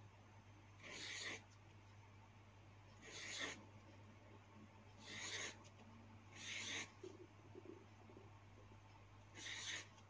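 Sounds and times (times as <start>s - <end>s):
marker scratching on paper: 0.8s - 1.6s, 3.0s - 3.6s, 5.0s - 5.7s, 6.3s - 7.2s, 9.3s - 10.0s.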